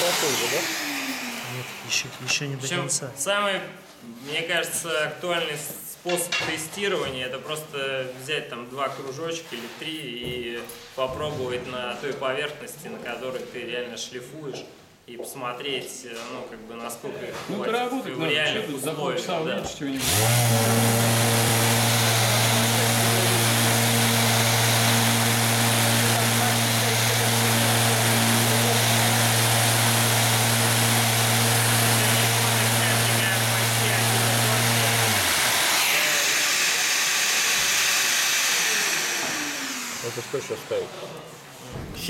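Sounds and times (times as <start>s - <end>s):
orbital sander sanding wood: 0.0s - 2.8s, 20.0s - 41.2s.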